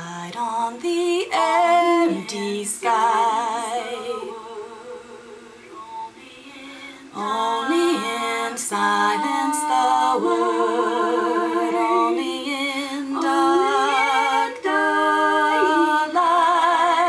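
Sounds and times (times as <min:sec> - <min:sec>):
woman singing a cappella: 0:00.0 - 0:17.0.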